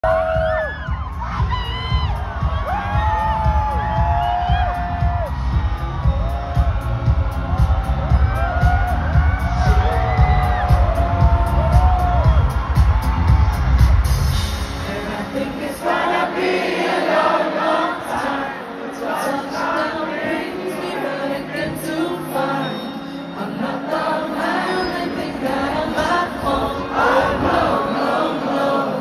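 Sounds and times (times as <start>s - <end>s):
crowd screaming and whooping: 0.0s - 14.7s
bass-heavy music: 0.0s - 15.1s.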